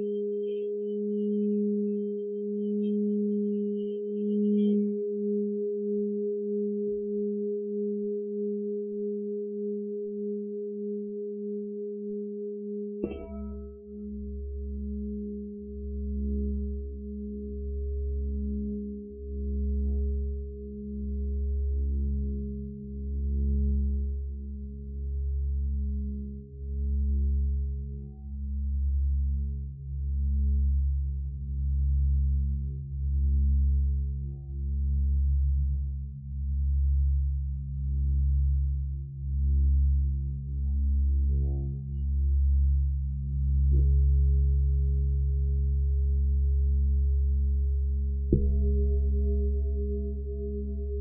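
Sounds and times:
singing bowl humming: 0.0 - 24.6, 43.7 - 51.0
singing bowl ringing: 13.0 - 15.0.

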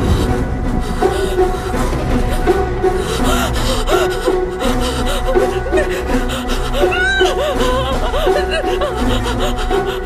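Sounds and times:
tense horror film score: 0.0 - 10.0.

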